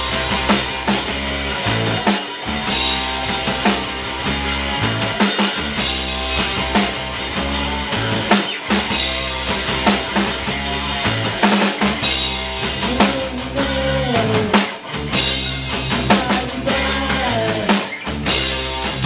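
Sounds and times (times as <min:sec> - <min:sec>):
drum kit beating: 0:00.0 - 0:19.0
live punk rock band: 0:00.0 - 0:19.0.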